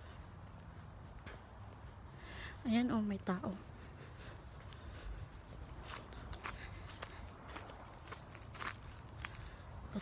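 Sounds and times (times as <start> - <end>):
faint footsteps: 0.0 - 10.0.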